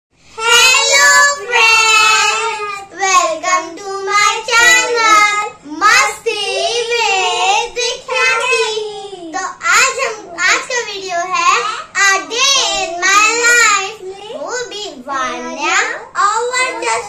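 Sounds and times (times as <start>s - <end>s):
children singing: 0.4s - 3.4s.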